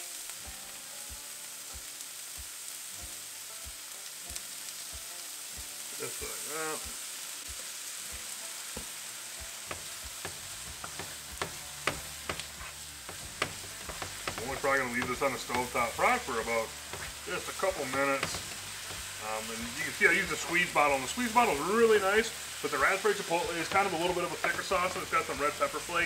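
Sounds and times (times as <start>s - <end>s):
vegetables sizzling in a skillet: 0.0s - 26.0s
wooden spatula clicking against pan: 9.7s - 15.8s, 17.9s - 19.1s.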